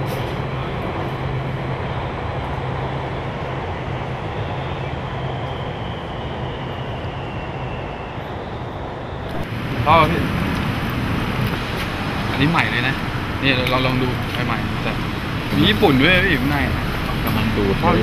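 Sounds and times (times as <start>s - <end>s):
city traffic noise: 0.0s - 18.0s
electric train passing: 0.0s - 18.0s.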